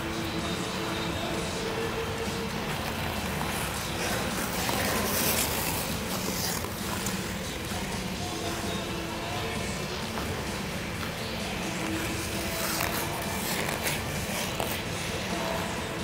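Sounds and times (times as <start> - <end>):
music over sound system: 0.0 - 16.0
skate blades scraping ice: 2.6 - 8.1, 11.6 - 15.0.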